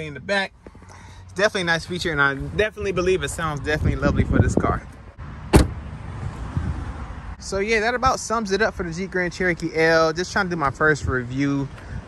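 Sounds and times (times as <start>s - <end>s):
car door slamming: 5.4s - 6.0s.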